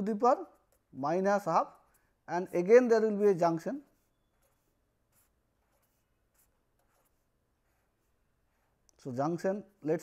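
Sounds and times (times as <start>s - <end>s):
pen scratching on paper: 0.0s - 9.4s.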